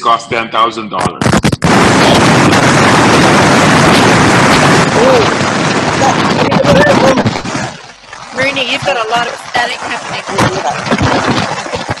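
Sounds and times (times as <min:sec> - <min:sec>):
faint voice: 0:00.0 - 0:01.2, 0:03.7 - 0:07.4, 0:08.4 - 0:12.0
loud static hiss: 0:00.0 - 0:12.0.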